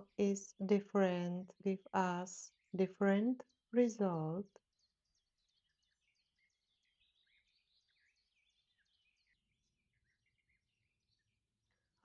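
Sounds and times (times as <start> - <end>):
faint bird chirping: 0.0 - 12.0.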